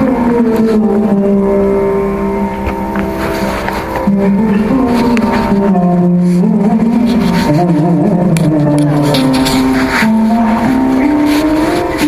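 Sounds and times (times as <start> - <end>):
electric mandolin long note: 0.0 - 12.0.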